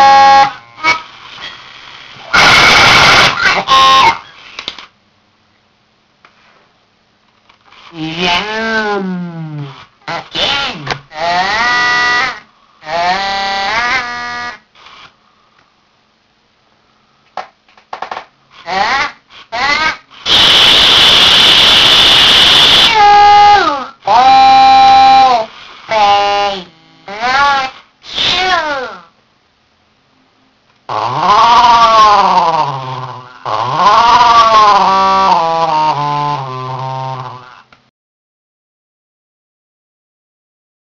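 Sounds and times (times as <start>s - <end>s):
glitched electronic toy voice: 0.0s - 1.2s, 2.2s - 4.5s, 7.7s - 15.1s, 18.6s - 29.2s, 30.9s - 37.8s.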